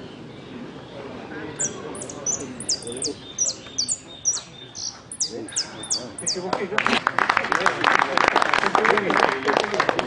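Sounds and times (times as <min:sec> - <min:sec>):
finch singing: 0:01.5 - 0:06.5.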